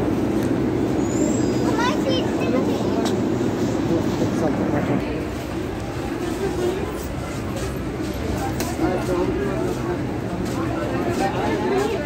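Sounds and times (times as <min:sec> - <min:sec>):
metro train rumble: 0:00.0 - 0:12.0
passengers' voices: 0:00.0 - 0:12.0
train high squeal: 0:00.9 - 0:02.0.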